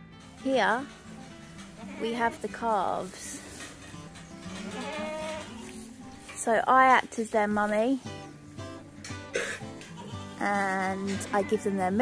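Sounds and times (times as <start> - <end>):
quiet background music: 0.0 - 12.0
calf bleating: 1.8 - 2.5, 4.4 - 5.8.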